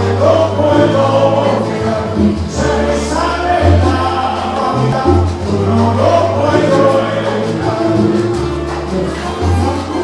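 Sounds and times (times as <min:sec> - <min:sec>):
voices singing: 0:00.0 - 0:10.0.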